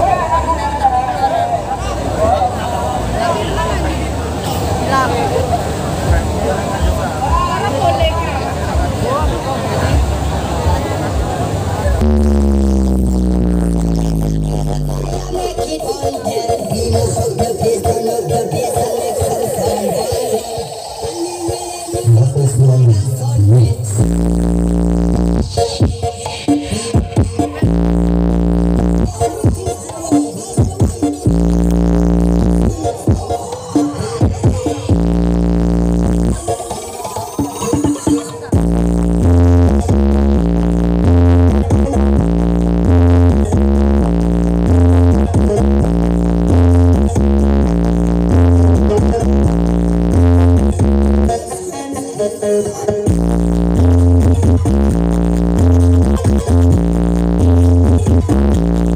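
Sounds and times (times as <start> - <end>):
deep bass note: 8.0 - 16.0, 22.1 - 25.4, 27.6 - 29.1, 31.3 - 32.7, 34.9 - 36.4, 38.5 - 51.3, 53.1 - 58.9
loud electronic dance music: 11.8 - 58.9.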